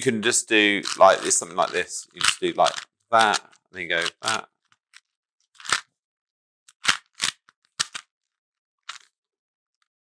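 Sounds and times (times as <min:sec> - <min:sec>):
plastic puzzle cube clacks: 0:00.7 - 0:04.4, 0:05.0 - 0:05.9, 0:06.7 - 0:08.1, 0:08.9 - 0:09.2.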